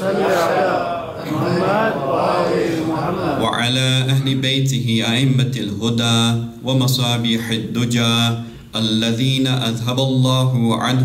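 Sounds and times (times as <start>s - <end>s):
man chanting melodically: 1.2s - 11.0s.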